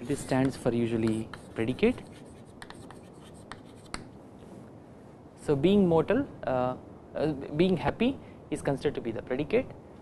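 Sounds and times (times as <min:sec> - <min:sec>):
chalk tapping on chalkboard: 0:00.0 - 0:04.1.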